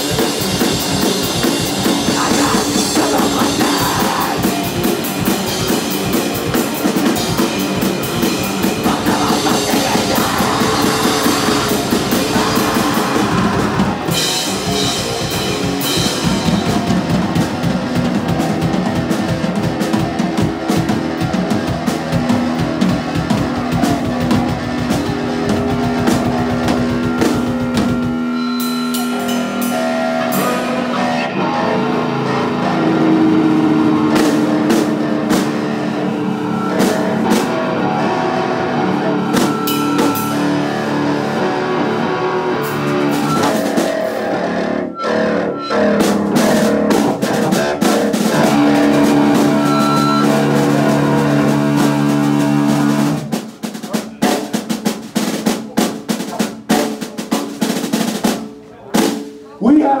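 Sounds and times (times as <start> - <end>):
distorted guitar and bass chord: 0.0 - 53.4
drum kit hits: 0.0 - 59.8
punk band playing live: 0.0 - 60.0.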